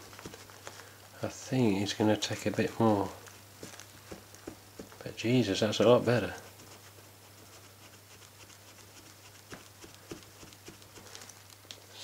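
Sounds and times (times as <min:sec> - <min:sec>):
clicks and taps on plastic: 0:03.6 - 0:05.0
eraser rubbing on plastic: 0:05.6 - 0:11.1.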